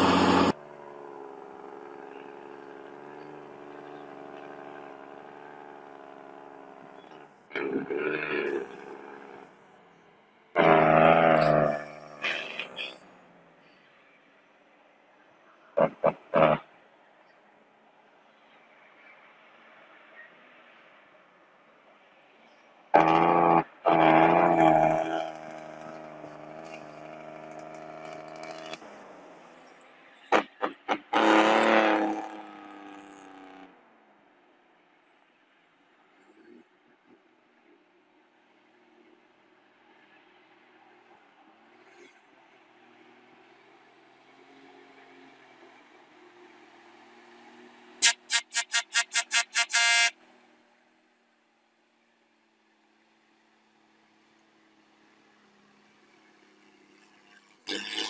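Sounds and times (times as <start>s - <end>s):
heavy truck engine running: 0.0s - 0.6s
truck horn toots: 0.0s - 0.6s, 10.6s - 13.0s, 23.0s - 26.8s, 30.3s - 32.5s, 48.0s - 50.3s, 57.7s - 58.0s
vehicle horn blasts: 48.0s - 50.2s.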